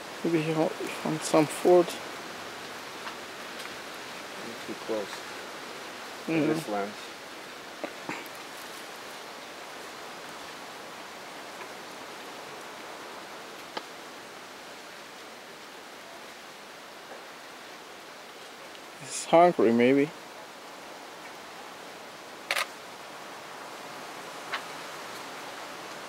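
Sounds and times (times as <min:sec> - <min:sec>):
steady outdoor hiss: 0:00.0 - 0:26.0
person's voice: 0:00.2 - 0:02.0, 0:06.3 - 0:07.0, 0:19.0 - 0:20.1.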